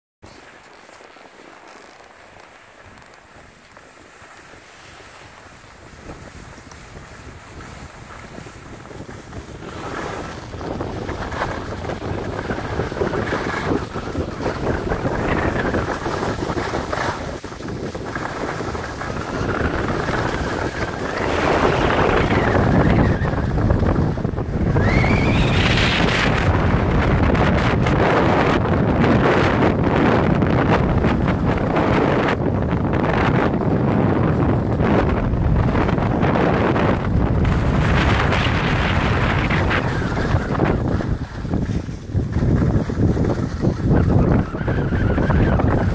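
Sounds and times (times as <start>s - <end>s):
skis scraping on packed snow: 0.2s - 45.9s
wind rushing over microphone: 2.4s - 45.9s.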